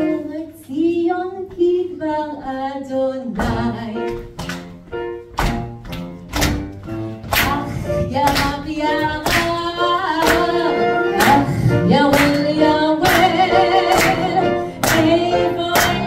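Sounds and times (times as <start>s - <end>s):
woman singing into microphone: 0.0s - 4.3s, 7.4s - 16.0s.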